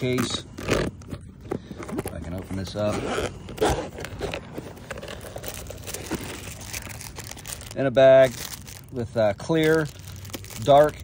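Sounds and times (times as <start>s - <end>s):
hard case rustling and scraping: 0.0s - 8.3s.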